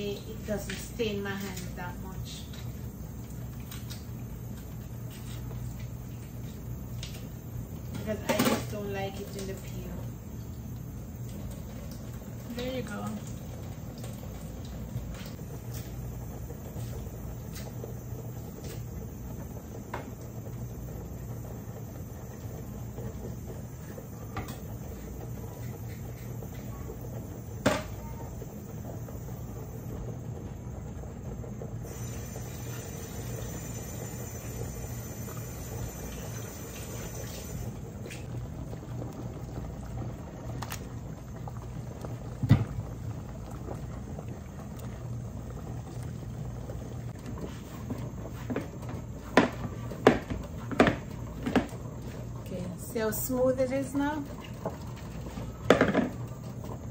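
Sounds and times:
pot boiling: 0.0s - 56.9s.

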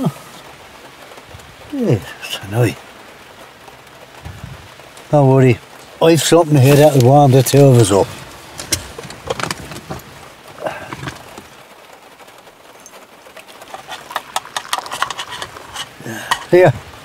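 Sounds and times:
rain pattering on car: 0.0s - 17.0s
light clicks and knocks of handling: 6.7s - 11.6s, 12.8s - 16.8s.

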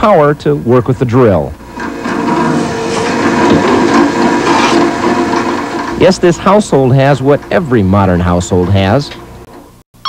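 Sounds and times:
drill press motor hum: 1.6s - 7.8s
drill bit cutting sheet: 1.7s - 6.0s.

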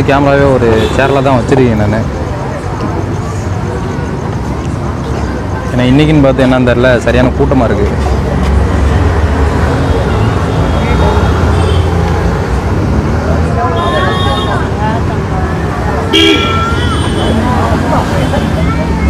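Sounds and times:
engines rumbling: 0.0s - 19.0s
vehicle horn toots: 13.7s - 14.7s, 16.1s - 17.5s.

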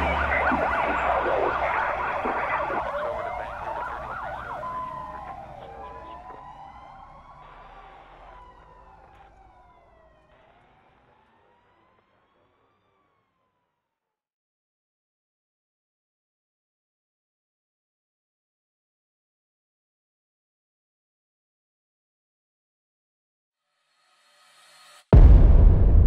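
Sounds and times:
emergency vehicle siren wailing: 0.0s - 14.0s.

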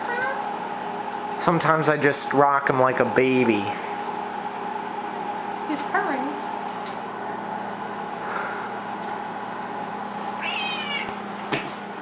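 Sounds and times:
cat meowing: 0.0s - 0.5s, 10.4s - 11.2s.

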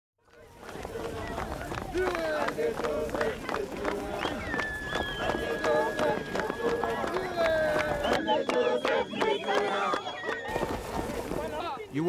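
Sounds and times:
crowd shouting and singing: 0.3s - 11.9s.

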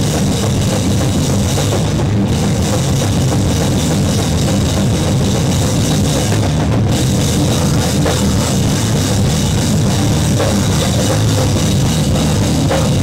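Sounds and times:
band playing heavy punk music: 0.0s - 13.0s
drum kit: 0.0s - 13.0s.

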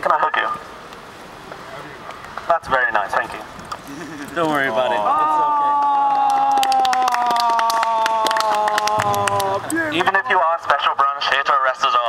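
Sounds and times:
people clapping: 5.3s - 10.3s.

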